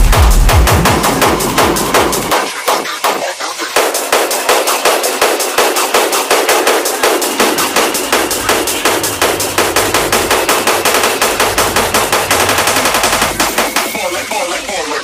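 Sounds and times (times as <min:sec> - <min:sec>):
electronic drum roll: 0:00.0 - 0:15.0.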